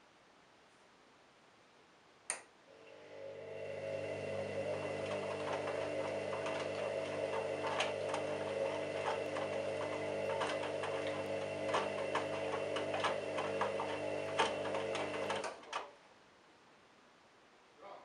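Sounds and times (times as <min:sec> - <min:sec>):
washing machine motor hum: 0:02.7 - 0:15.8
tumbling laundry clicks: 0:04.8 - 0:15.9.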